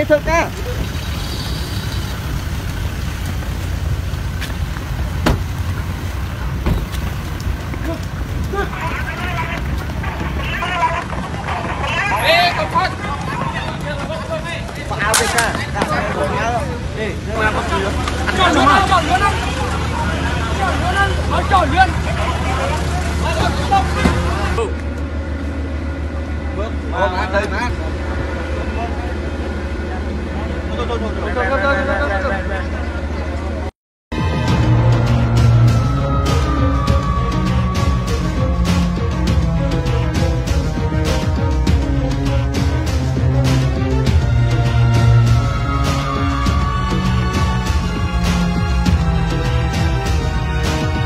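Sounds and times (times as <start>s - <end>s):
people talking: 0.0s - 0.9s, 7.8s - 24.8s
pickup truck engines idling: 0.0s - 33.6s.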